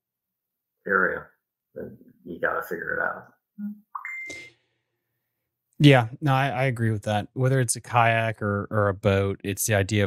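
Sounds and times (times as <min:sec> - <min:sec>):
electronic beep: 0:03.6 - 0:04.6.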